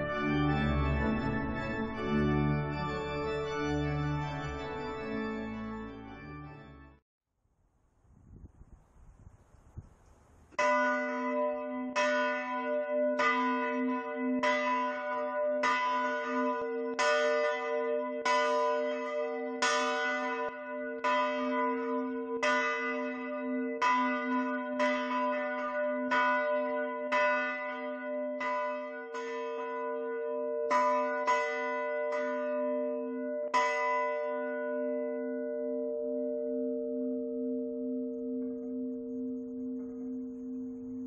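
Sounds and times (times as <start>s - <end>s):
church bell ringing: 0.0s - 7.0s, 10.6s - 41.0s.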